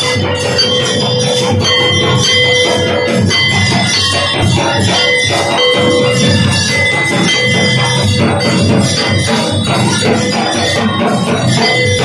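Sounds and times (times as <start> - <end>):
brass bell ringing: 0.0 - 12.0.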